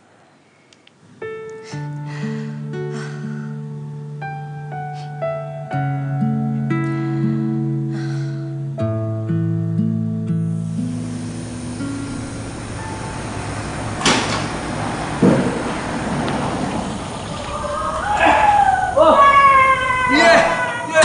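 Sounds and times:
click: 0:00.7 - 0:01.6
car engine and tyre noise: 0:10.6 - 0:20.6
thump: 0:14.0 - 0:16.4
voices calling out and laughing: 0:14.6 - 0:21.0.

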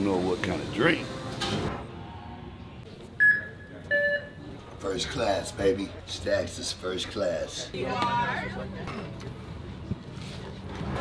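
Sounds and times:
airport terminal background noise: 0:00.0 - 0:11.0
electronic beeps: 0:03.2 - 0:04.4.

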